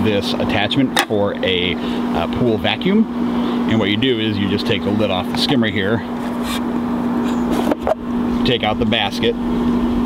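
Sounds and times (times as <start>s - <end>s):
pool pump humming: 0.0s - 10.0s.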